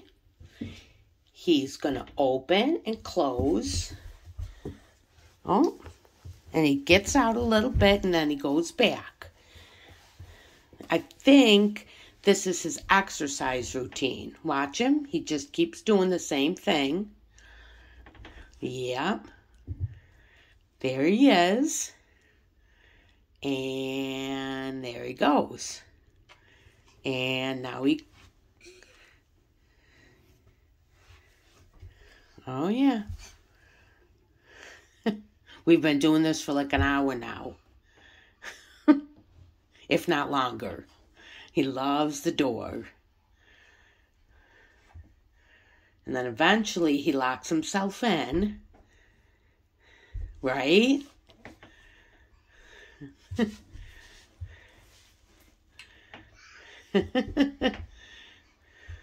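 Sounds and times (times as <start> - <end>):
soft low bumps: 1.8 - 8.4
quiet breathing: 9.2 - 10.9, 17.2 - 18.6, 19.4 - 20.8, 22.0 - 23.4, 25.9 - 27.1, 28.1 - 32.4, 33.2 - 35.6, 37.6 - 38.4, 43.0 - 46.1, 48.7 - 50.4, 51.2 - 57.0, 57.9 - 59.0.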